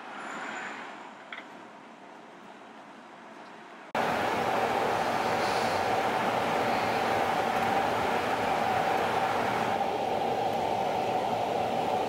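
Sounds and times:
ventilation hum: 1.6s - 12.0s.

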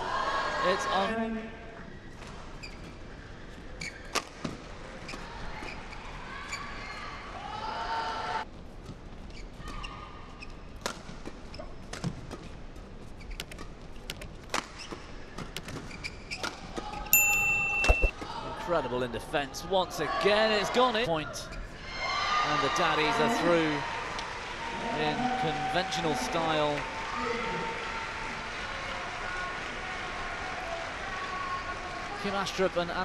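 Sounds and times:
rackets striking shuttlecock: 17.2s - 18.2s
shoe squeaks on court: 17.8s - 18.1s.

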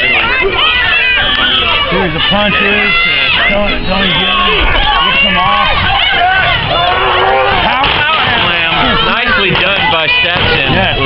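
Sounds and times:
crowd shouting and chattering: 0.0s - 11.0s.

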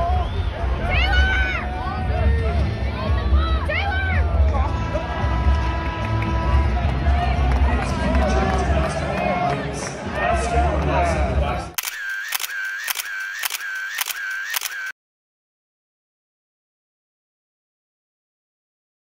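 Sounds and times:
music: 0.0s - 11.7s
crowd chatter: 0.0s - 14.7s
camera shutter clicks: 11.8s - 14.9s.

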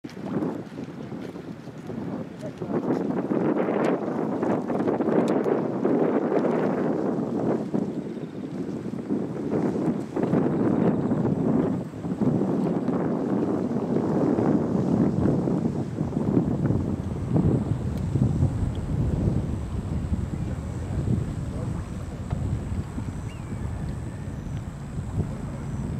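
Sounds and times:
wind buffeting microphone: 0.0s - 25.9s.

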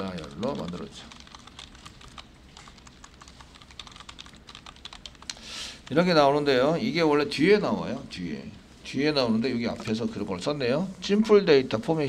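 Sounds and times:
keyboard typing: 0.0s - 6.0s.

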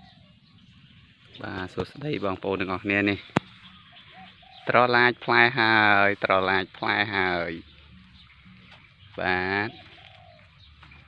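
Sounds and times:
faint low bird call: 0.0s - 2.0s, 3.0s - 5.2s, 7.4s - 11.0s.

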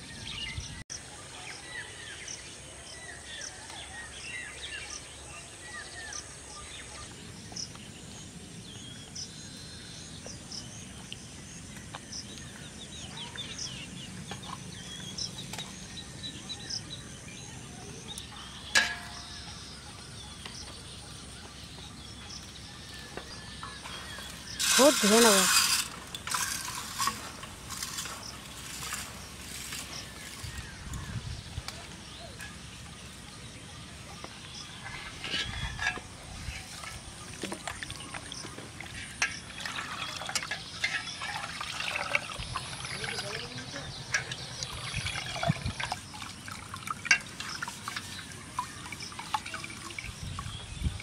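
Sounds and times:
crickets chirring: 20.7s - 33.2s, 34.0s - 51.0s
grains clicking against metal: 23.1s - 30.9s, 34.2s - 50.9s
water sloshing in bowl: 34.7s - 51.0s.

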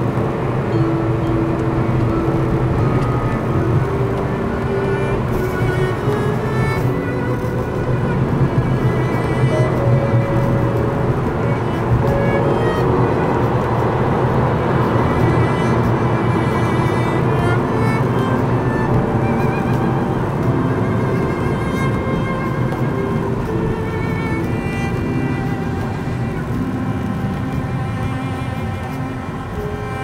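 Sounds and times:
car road and engine noise: 0.0s - 30.0s
slow background music: 0.0s - 30.0s.

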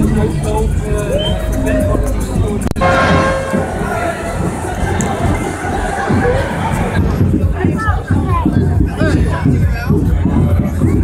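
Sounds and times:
large walking crowd: 0.0s - 11.0s
steady ringing tone: 2.8s - 4.9s.

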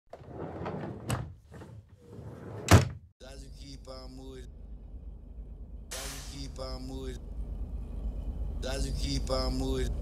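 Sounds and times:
door slamming: 2.7s - 3.0s.

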